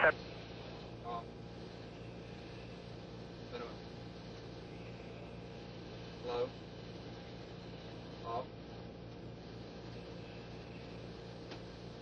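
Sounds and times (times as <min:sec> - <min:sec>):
radio channel hiss and hum: 0:00.0 - 0:12.0.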